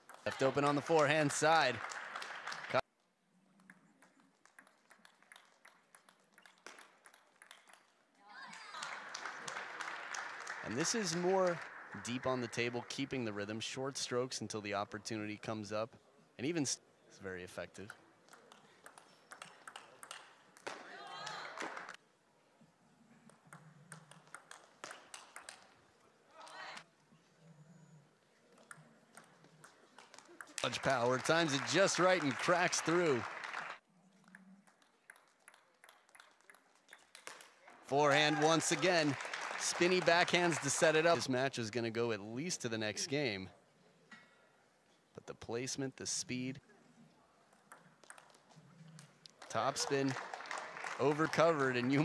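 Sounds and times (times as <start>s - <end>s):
crowd cheering and clapping: 0.0s - 2.8s, 4.6s - 13.6s, 19.7s - 22.0s, 29.6s - 33.8s, 37.7s - 41.4s, 49.3s - 52.0s
table tennis ball clicking: 18.2s - 20.7s, 23.3s - 25.7s, 47.5s - 48.4s
person's voice: 37.9s - 43.5s.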